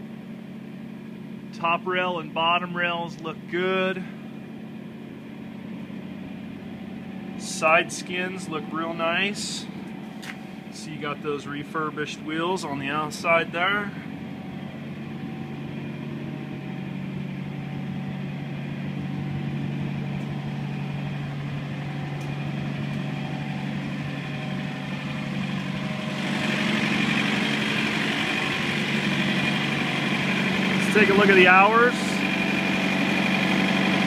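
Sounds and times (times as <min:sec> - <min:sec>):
refrigeration unit diesel engine hum: 0:00.0 - 0:34.0
fan noise: 0:01.5 - 0:34.0.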